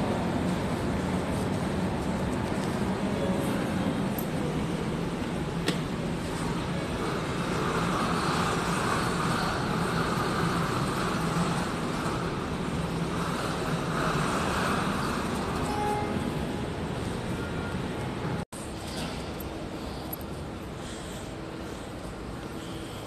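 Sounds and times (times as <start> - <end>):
low rumbling hall background: 0.0 - 23.0.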